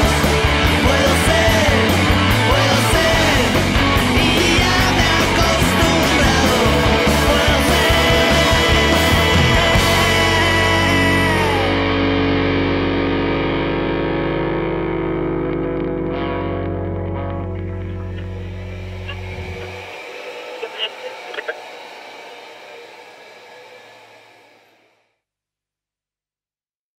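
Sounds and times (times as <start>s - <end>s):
distorted electric guitar chord ringing: 0.0s - 24.9s.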